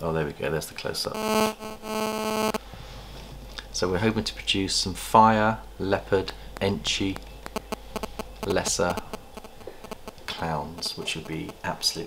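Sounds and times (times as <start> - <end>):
phone interference buzzing: 1.1 - 2.7, 6.5 - 11.8.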